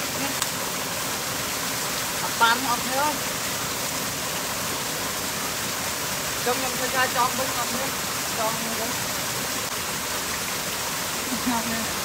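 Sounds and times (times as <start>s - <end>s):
stream water rushing: 0.0s - 12.0s.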